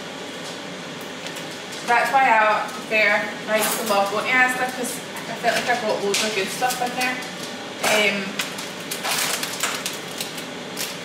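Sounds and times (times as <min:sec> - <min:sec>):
plastic packaging crinkling: 0:05.4 - 0:11.0.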